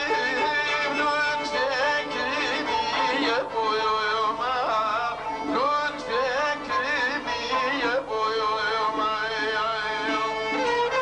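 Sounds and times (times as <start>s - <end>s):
man singing ornamented notes: 0.0s - 10.7s
instrumental accompaniment: 0.0s - 11.0s.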